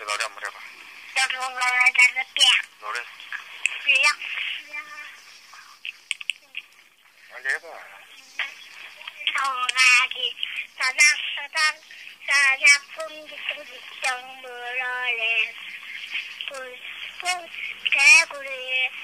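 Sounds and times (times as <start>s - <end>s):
child singing over phone line: 9.0s - 15.6s, 16.5s - 19.0s.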